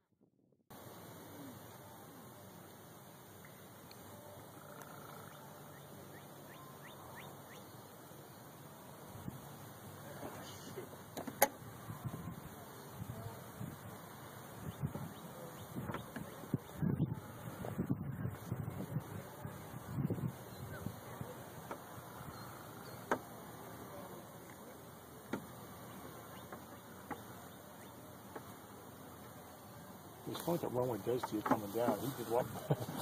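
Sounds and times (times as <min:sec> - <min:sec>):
wind gusting on microphone: 0:11.6 - 0:22.3.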